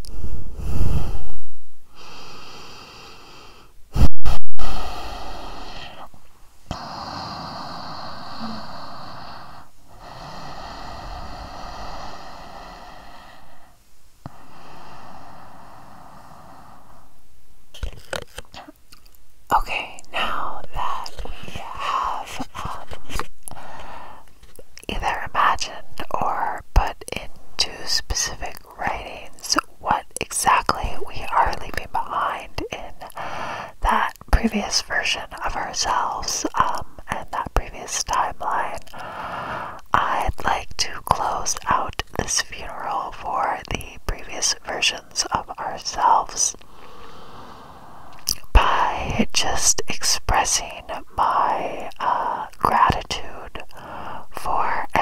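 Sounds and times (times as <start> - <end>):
person whispering: 4.6 - 17.0, 17.8 - 18.8, 19.5 - 23.7, 24.5 - 47.2, 48.0 - 55.0.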